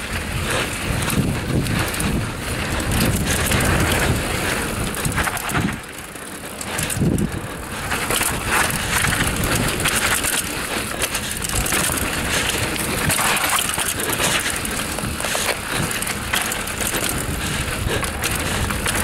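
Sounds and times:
wind on microphone: 0.0 - 5.8
bike rattling and knocking: 0.0 - 19.0
bike tyres crunching on dirt: 0.0 - 19.0.

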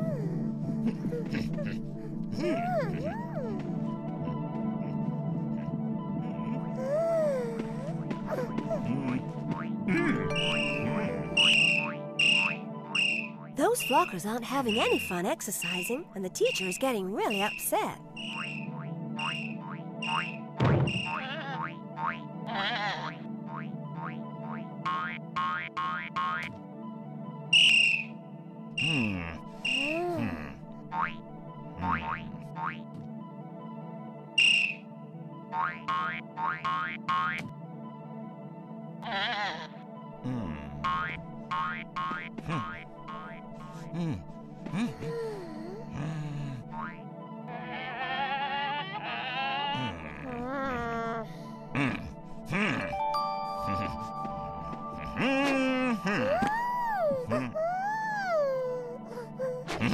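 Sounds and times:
soft background score: 0.0 - 59.9
cartoon springy boings: 10.2 - 14.0, 17.4 - 21.4
high whistle-like chirps: 10.3 - 14.1, 17.3 - 20.3, 27.5 - 28.2, 34.4 - 34.8.

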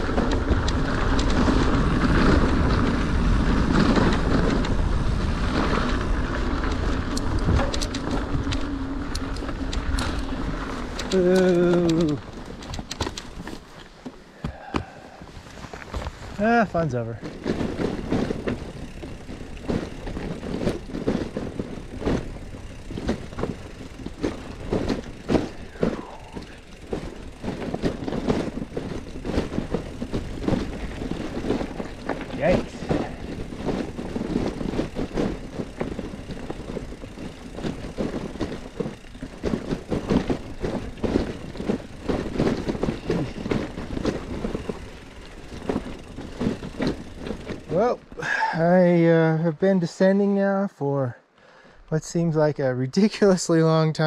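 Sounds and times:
wind rush on camera: 0.0 - 48.6
bicycle rattling over rocks: 0.0 - 54.0.

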